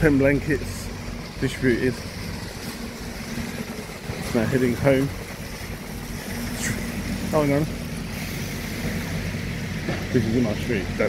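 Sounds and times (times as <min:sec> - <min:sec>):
city street traffic rumble: 0:00.0 - 0:11.0
short falling hiss: 0:08.0 - 0:09.4.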